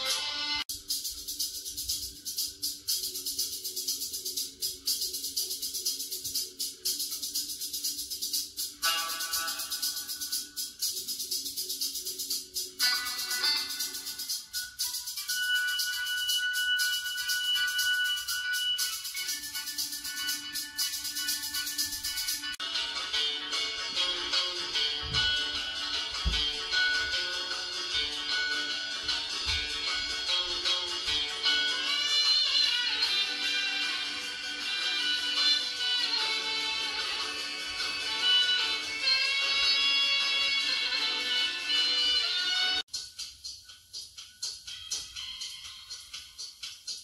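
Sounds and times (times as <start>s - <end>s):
music with a steady beat: 0.0s - 47.0s.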